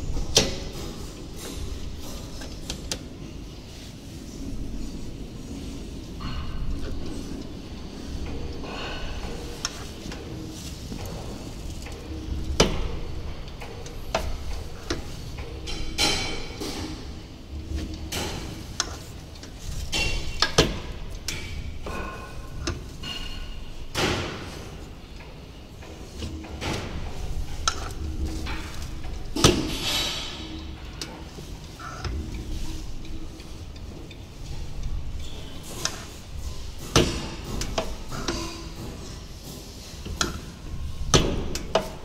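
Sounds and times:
metal clunks and knocks of machine: 10.9s - 33.8s, 35.2s - 42.0s.

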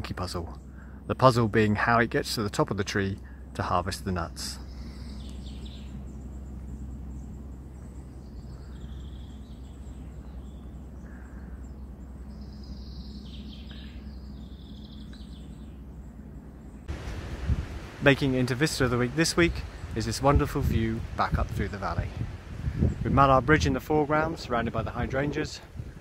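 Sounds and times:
birds chirping: 0.0s - 26.0s
low rumble: 0.0s - 26.0s.

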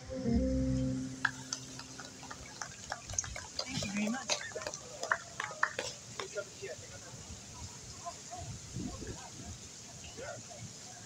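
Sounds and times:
sparse applause: 0.9s - 6.4s.

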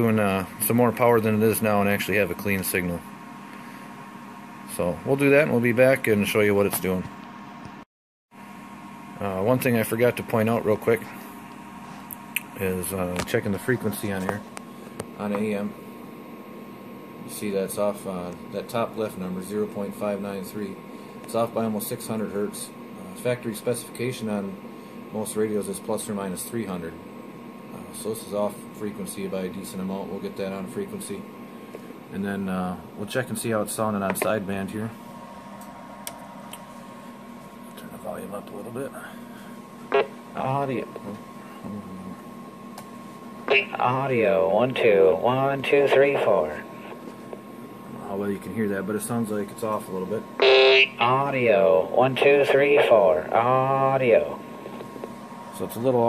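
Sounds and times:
faint hum: 0.0s - 56.0s
steady low hiss: 37.3s - 56.0s.

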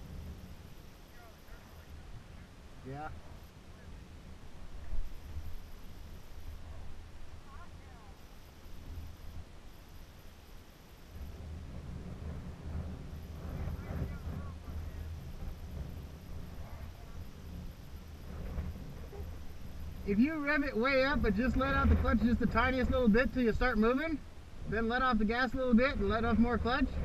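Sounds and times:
faint dirt bike engine: 0.0s - 27.0s
wind rumbling on microphone: 0.0s - 27.0s.

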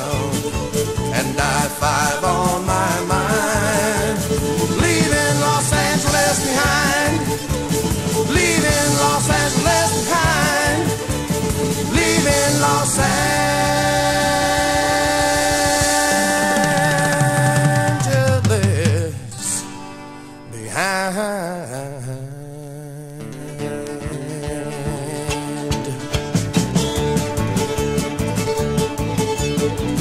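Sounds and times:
country band playing: 0.0s - 30.0s.

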